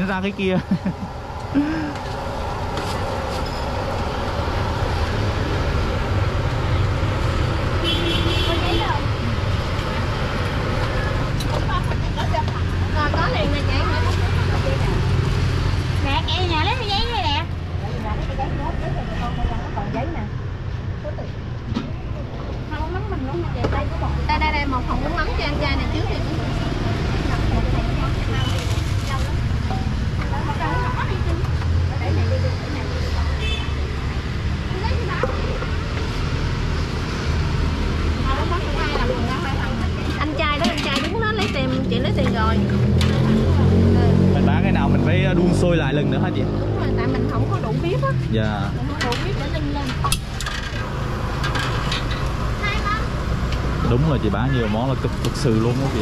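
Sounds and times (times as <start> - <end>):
traffic rumble: 0.0 - 56.0
people talking: 16.0 - 20.4, 30.2 - 33.5, 38.2 - 50.1, 53.9 - 56.0.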